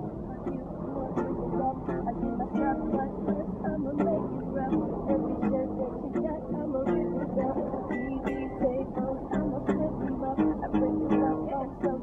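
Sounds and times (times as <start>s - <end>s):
acoustic guitar music: 0.0s - 12.0s
people talking: 0.0s - 12.0s.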